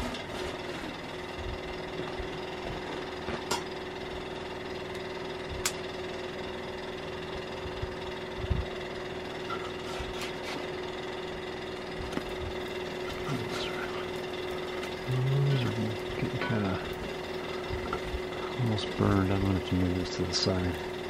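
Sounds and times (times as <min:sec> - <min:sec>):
low hum: 0:00.0 - 0:21.0.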